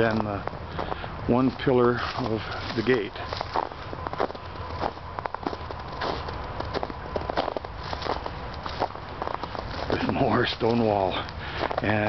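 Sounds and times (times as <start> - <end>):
footsteps on snow and dry leaves: 0.0 - 12.0.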